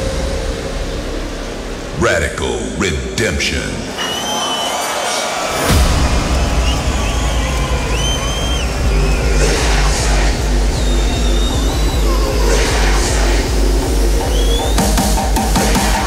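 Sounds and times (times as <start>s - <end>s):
hardstyle track with heavy bass: 0.0s - 16.0s
crowd cheering and whistling: 3.9s - 16.0s.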